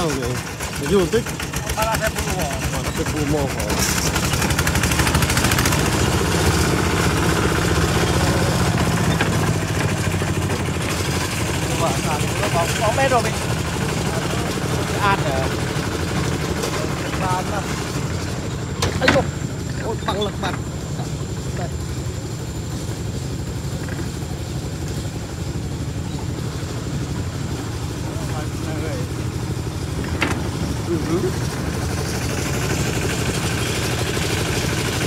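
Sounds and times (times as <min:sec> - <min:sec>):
diesel engine chugging: 0:00.0 - 0:35.0.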